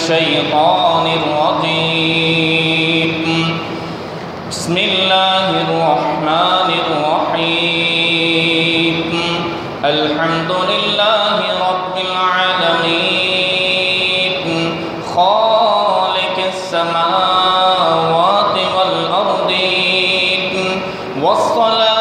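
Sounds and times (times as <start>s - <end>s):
man reciting melodically: 0.0s - 22.0s.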